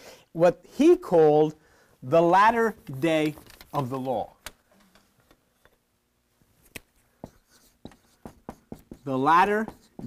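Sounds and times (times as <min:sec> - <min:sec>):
marker writing on whiteboard: 0:07.1 - 0:10.0.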